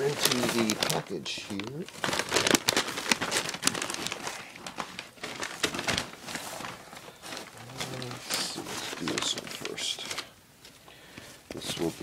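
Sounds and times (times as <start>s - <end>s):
paper bag crinkling: 0.0s - 12.0s.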